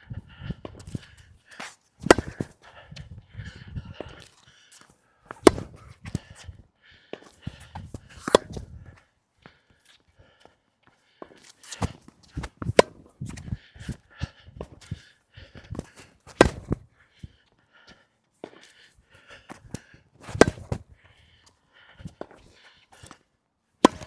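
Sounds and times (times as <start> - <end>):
racket striking tennis ball: 2.0 - 2.5, 5.3 - 6.2, 8.1 - 8.7, 11.7 - 13.1, 16.3 - 16.8, 20.2 - 20.8, 23.8 - 24.0
footsteps on hard court: 7.1 - 13.4.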